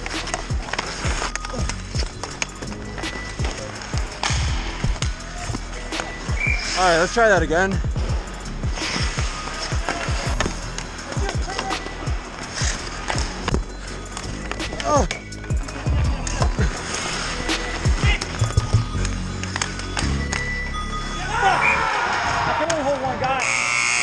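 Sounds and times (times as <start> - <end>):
sticks and puck clacking: 0.0 - 6.8, 8.8 - 20.6
skate blades scraping ice: 0.0 - 7.1, 8.7 - 18.9
players shouting: 9.5 - 10.5, 21.2 - 23.3.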